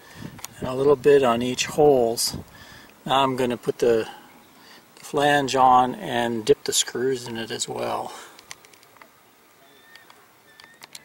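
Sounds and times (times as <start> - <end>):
faint clicks: 8.3 - 9.1, 9.9 - 11.0
faint whistle-like tones: 9.5 - 11.0.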